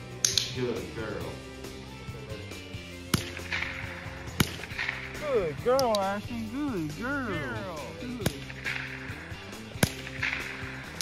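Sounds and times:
background music: 0.0 - 11.0
rifle shots: 3.1 - 5.4, 8.2 - 11.0.

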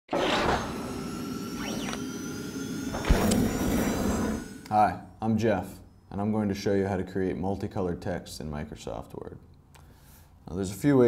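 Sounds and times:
steady tones and gliding sweeps: 0.6 - 4.7
sharp low thump: 2.9 - 4.2.

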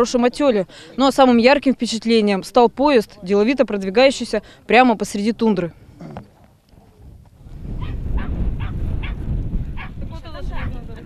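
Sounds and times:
dog barking: 7.8 - 9.2, 9.8 - 10.0.

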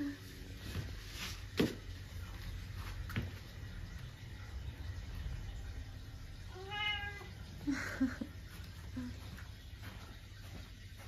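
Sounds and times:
cat meowing: 6.5 - 7.4.

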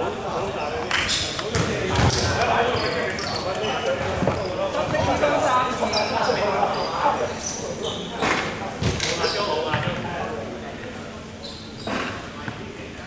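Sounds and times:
players' voices: 0.0 - 13.0
shoes squeaking: 0.5 - 9.9, 11.4 - 12.6
basketball bouncing on court: 1.4 - 2.4.

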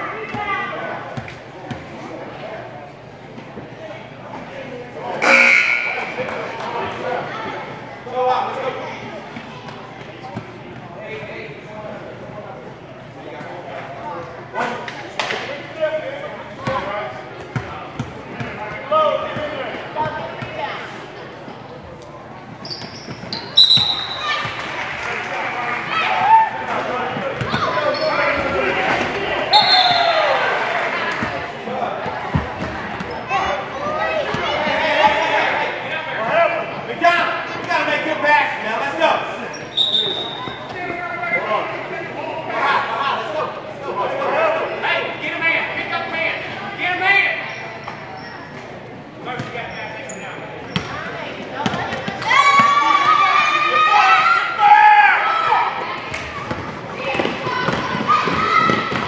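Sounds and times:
voices in gym: 0.0 - 59.0.

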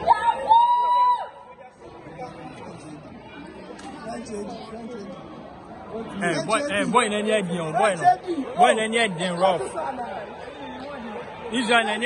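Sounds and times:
background chatter of people: 0.0 - 12.0.

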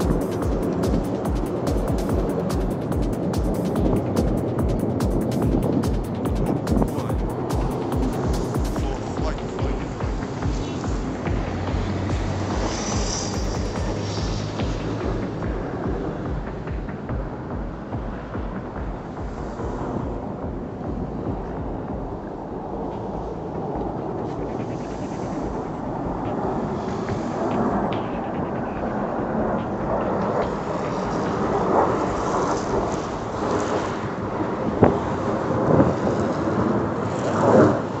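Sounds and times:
jets rumbling overhead: 0.0 - 38.0.

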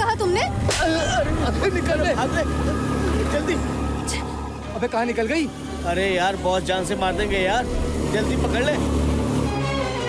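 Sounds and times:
motor scooter engine drone: 0.0 - 10.0
people exclaiming and crying out: 0.7 - 4.6.

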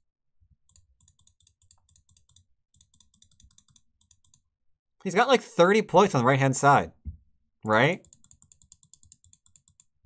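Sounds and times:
computer keyboard tapping: 0.7 - 4.4, 8.0 - 9.9.

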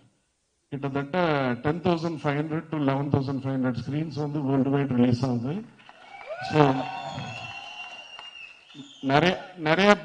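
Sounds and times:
faint high whistle-like tone: 6.9 - 9.3
man speaking over loudspeaker: 9.0 - 10.0.

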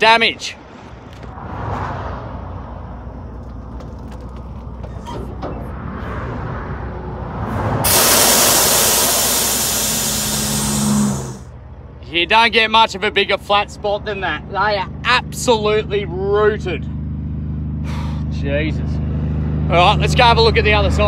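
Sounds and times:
diesel truck engine rumbling: 2.4 - 21.0
air brakes hissing: 7.8 - 11.5, 17.8 - 18.3.

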